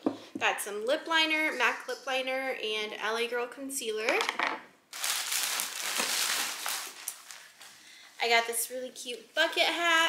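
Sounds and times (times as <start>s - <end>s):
plastic bag crinkling and rustling: 4.9s - 7.8s.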